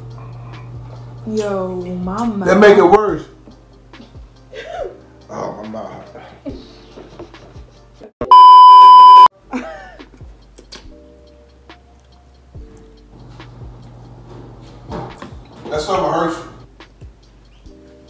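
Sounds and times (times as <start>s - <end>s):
censor bleep tone: 8.2s - 9.3s.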